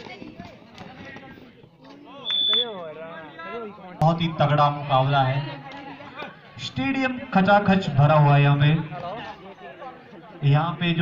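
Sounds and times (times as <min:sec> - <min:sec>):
faint voices of players: 0:00.0 - 0:11.0.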